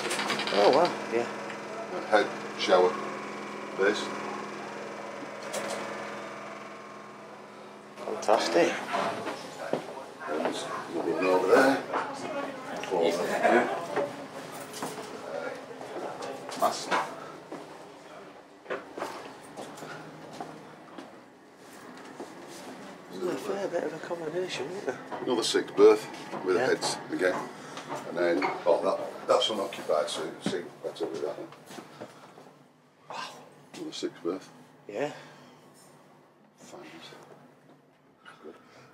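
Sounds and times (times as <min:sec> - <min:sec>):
machinery hum with held tones: 0:00.0 - 0:38.9.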